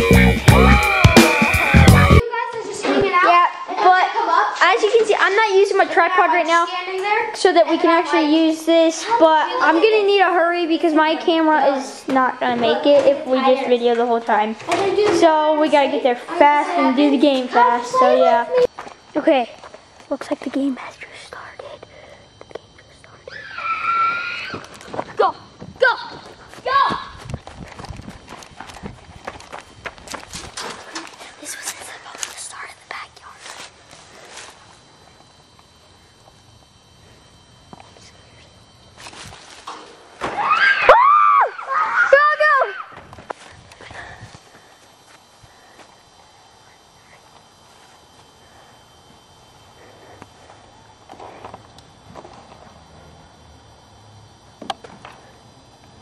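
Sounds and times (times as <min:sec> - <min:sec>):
child yelling: 0:17.6 - 0:18.7, 0:25.2 - 0:27.2, 0:40.4 - 0:43.0
child crying: 0:23.3 - 0:24.7, 0:40.7 - 0:43.0.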